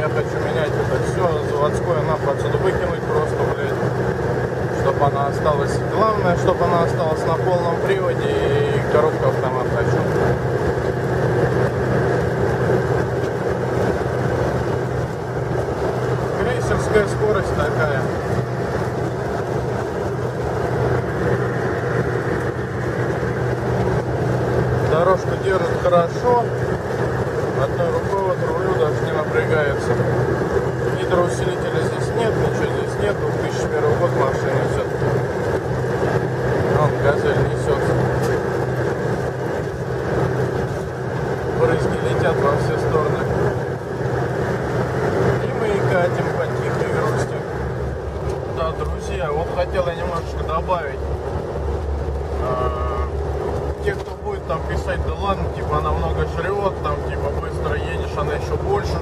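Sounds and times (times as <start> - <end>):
car engine drone: 0.0 - 59.0
road noise: 0.0 - 59.0.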